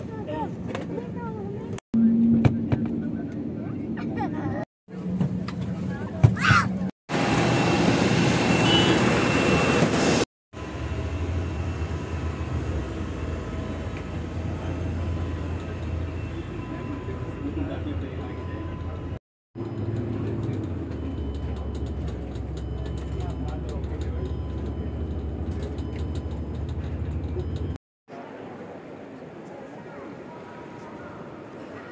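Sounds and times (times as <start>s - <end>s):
bus driving rumble: 0.0s - 27.8s.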